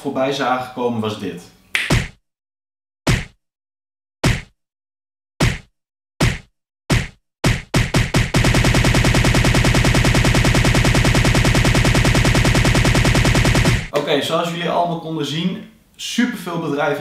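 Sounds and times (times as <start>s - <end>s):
repeated sharp hits: 5.4s - 14.0s.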